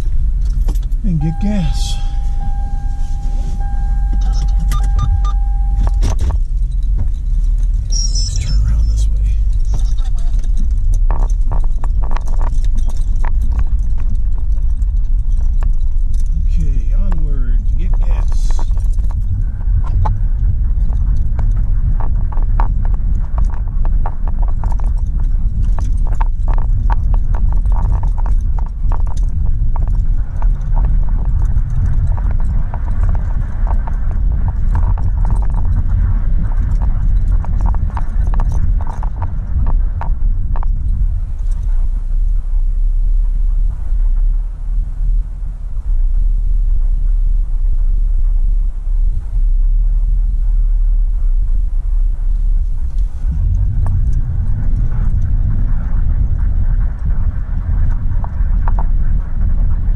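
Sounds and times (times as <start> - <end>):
car engine and road rumble: 0.0 - 59.9
small clicks and rattles: 4.3 - 42.6, 52.3 - 59.8.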